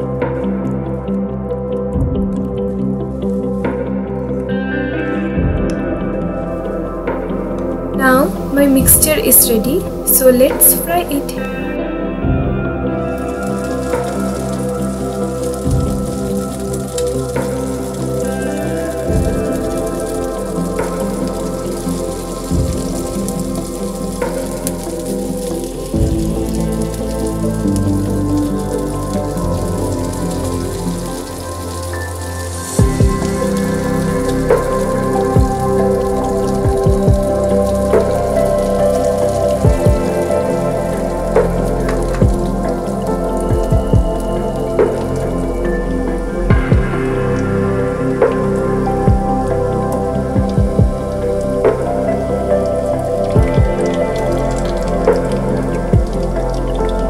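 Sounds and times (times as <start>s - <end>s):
soft background music: 0.0s - 57.0s
oil sizzling in a wok: 13.0s - 57.0s
oil crackles and pops: 13.1s - 57.0s.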